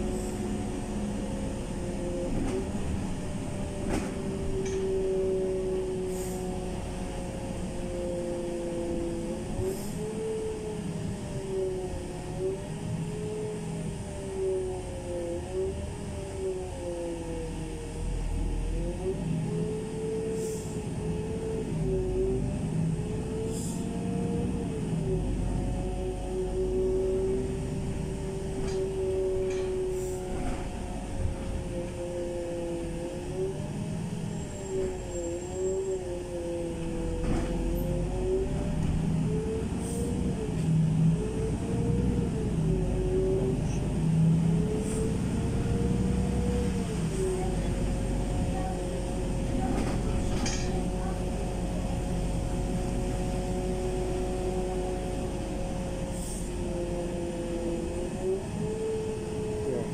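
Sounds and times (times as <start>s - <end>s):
bus drivetrain whine: 0.0s - 59.9s
low road rumble: 0.0s - 59.9s.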